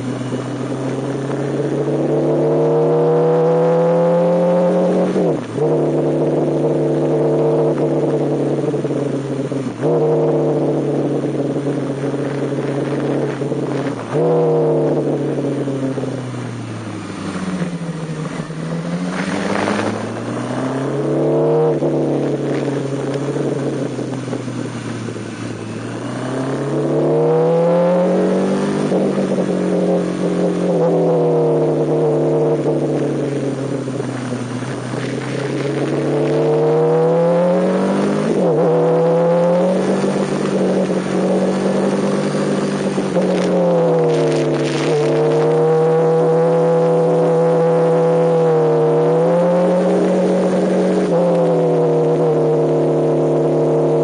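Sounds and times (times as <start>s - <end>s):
motorcycle engine revving on track: 0.0s - 54.0s.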